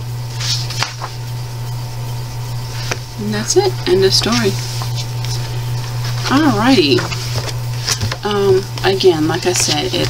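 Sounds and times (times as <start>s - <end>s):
steady low hum: 0.0s - 10.0s
paper page rustling: 0.3s - 1.3s, 2.7s - 10.0s.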